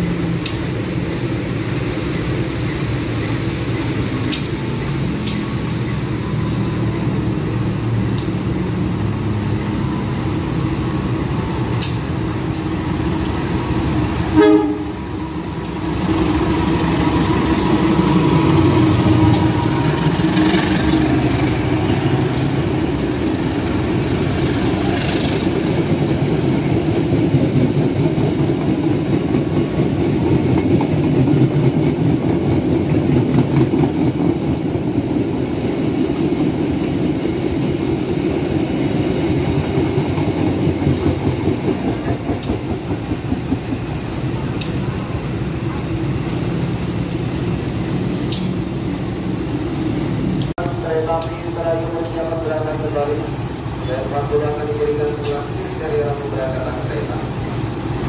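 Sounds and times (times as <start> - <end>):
train horn blast: 14.3 - 15.1.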